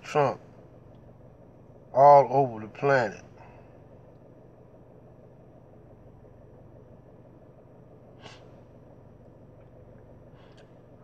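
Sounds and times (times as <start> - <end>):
low hum inside car: 0.0 - 11.0.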